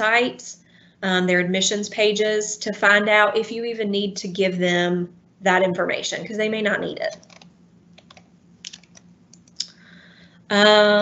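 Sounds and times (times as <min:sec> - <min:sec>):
computer clicks: 0:07.1 - 0:09.7.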